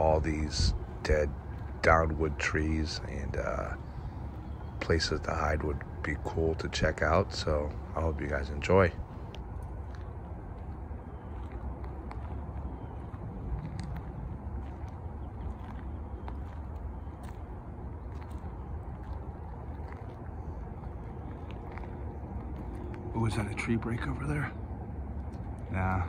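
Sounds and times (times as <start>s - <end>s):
low outdoor rumble: 0.0s - 26.0s.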